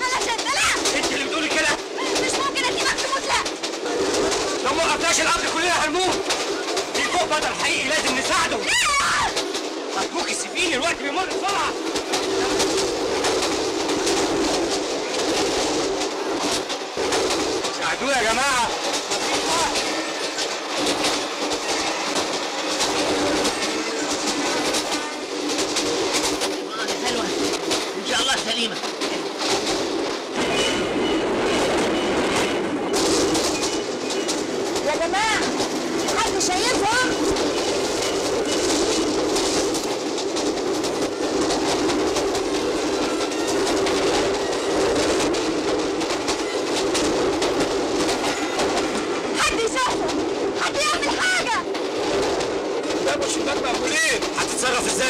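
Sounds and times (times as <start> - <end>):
train rumble: 0.0 - 55.0
train wheels clattering on rails: 0.0 - 55.0.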